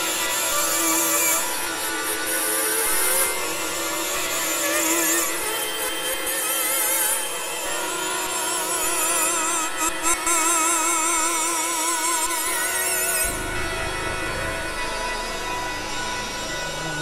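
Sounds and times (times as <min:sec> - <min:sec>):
buzzy synthesizer tones: 0:13.2 - 0:17.0.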